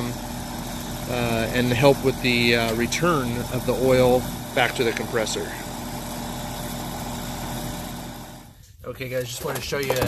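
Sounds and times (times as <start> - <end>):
air conditioner unit humming: 0.0 - 10.0.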